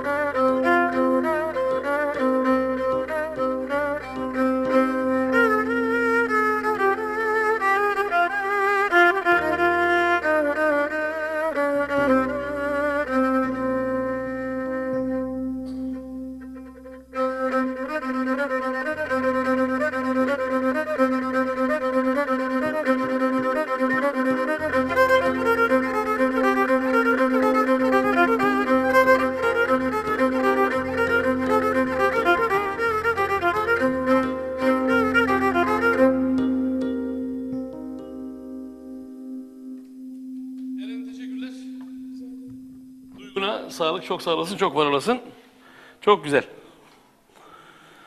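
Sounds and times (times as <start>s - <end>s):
bowed spike fiddle folk tune: 0.0s - 45.0s.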